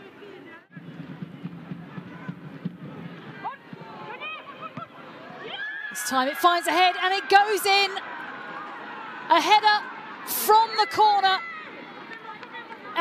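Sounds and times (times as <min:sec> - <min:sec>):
low murmur of voices: 0:00.0 - 0:05.6
players shouting: 0:02.0 - 0:13.0.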